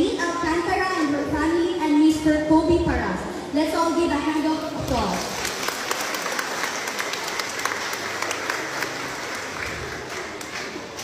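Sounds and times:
audience applauding: 0:05.1 - 0:11.0.

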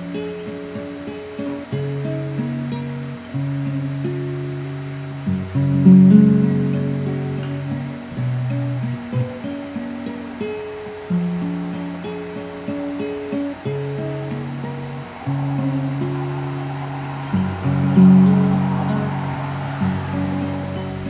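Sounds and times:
classical guitar fingerstyle: 0:00.0 - 0:16.7, 0:17.3 - 0:19.1, 0:19.8 - 0:21.0.

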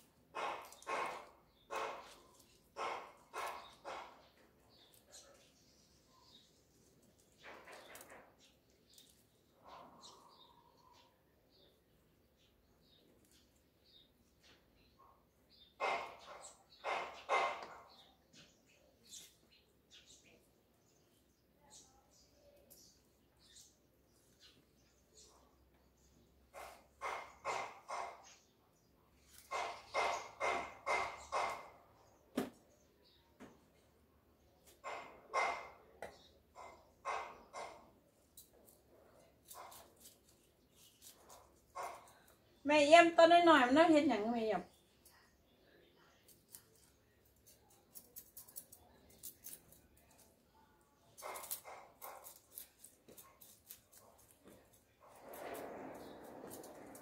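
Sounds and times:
dog barking: 0:00.3 - 0:04.2, 0:15.8 - 0:18.0, 0:26.5 - 0:28.4, 0:29.5 - 0:31.8, 0:34.8 - 0:35.9, 0:36.5 - 0:37.9, 0:41.3 - 0:42.2, 0:51.2 - 0:52.4
knife chopping on wooden board: 0:29.4 - 0:31.8.

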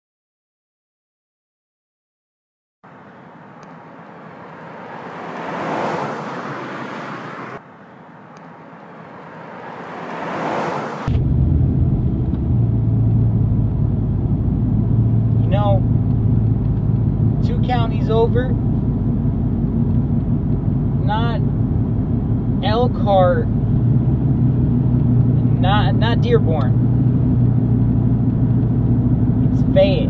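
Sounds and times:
pickup truck driving past: 0:03.2 - 0:07.6, 0:08.5 - 0:29.8
engine drone inside cab: 0:11.0 - 0:30.0.

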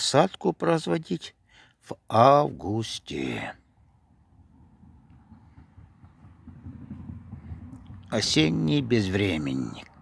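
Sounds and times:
faint low rumble: 0:03.4 - 0:10.0.

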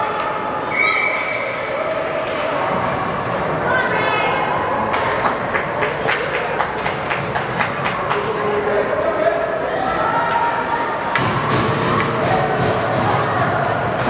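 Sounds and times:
spectator chatter: 0:00.0 - 0:14.0.

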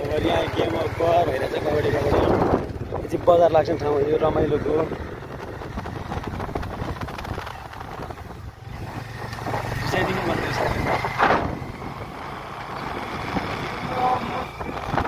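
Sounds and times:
vehicle engine rumbling: 0:00.0 - 0:15.0
wind on microphone: 0:01.7 - 0:03.6, 0:04.2 - 0:15.0.

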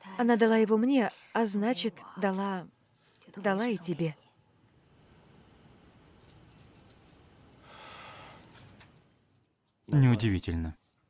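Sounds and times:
necklace chain jingling: 0:06.2 - 0:09.8.

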